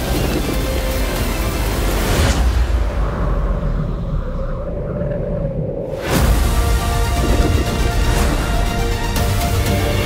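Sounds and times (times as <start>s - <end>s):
deep low rumble: 2.5s - 8.9s.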